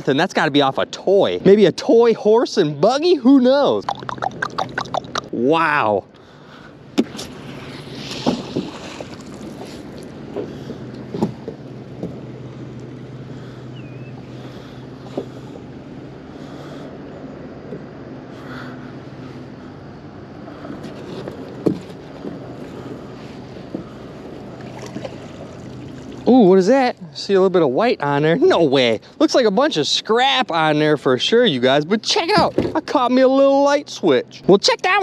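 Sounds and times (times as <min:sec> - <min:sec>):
steady low hum: 0:00.0 - 0:34.8
light water sounds: 0:06.2 - 0:17.9, 0:18.8 - 0:27.4
rope hauled over boat side: 0:07.0 - 0:12.3.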